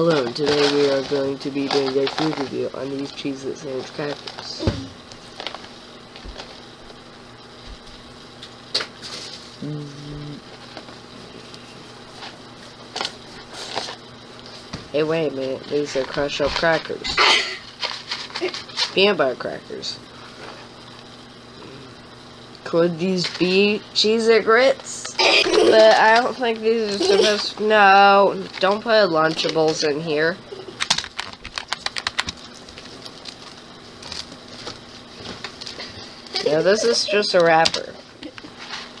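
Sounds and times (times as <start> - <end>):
packaging crinkling and rustling: 0.0 - 3.2, 3.8 - 7.0, 12.1 - 14.8, 30.7 - 36.4.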